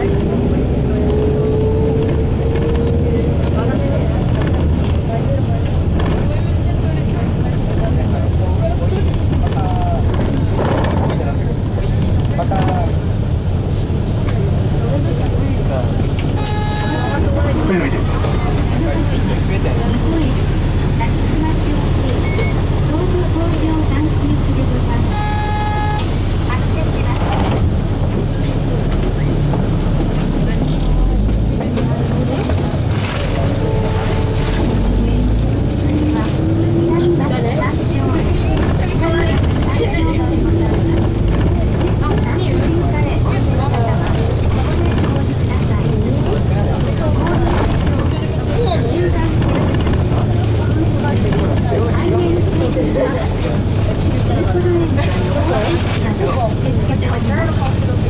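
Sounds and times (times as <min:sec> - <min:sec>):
bus diesel engine running: 0:00.0 - 0:58.0
horn-like tone: 0:16.4 - 0:17.3, 0:25.1 - 0:26.3, 0:33.5 - 0:34.9.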